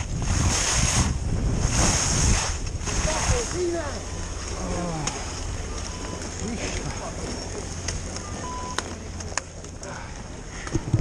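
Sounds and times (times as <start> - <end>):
wind rumble on microphone: 0.0 - 5.7, 10.7 - 11.0
short beep: 5.8 - 6.4, 8.2 - 8.9.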